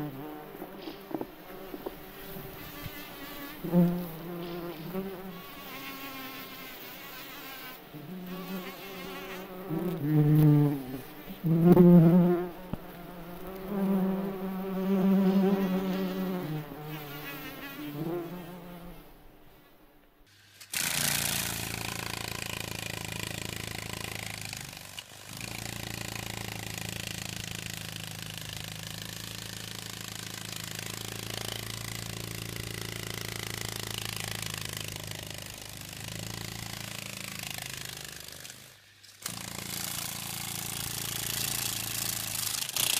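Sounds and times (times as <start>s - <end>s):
beetle wings buzzing: 0.0s - 19.1s
rough steady buzz: 0.0s - 42.9s.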